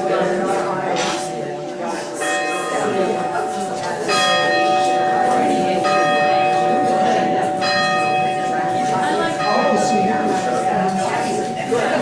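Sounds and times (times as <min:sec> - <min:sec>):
church bell tolling: 0:00.0 - 0:12.0
people talking: 0:00.0 - 0:12.0.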